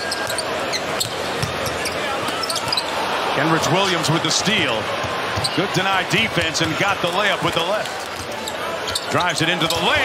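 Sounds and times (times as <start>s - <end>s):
large crowd noise: 0.0s - 10.0s
basketball bouncing on hardwood: 1.0s - 1.6s.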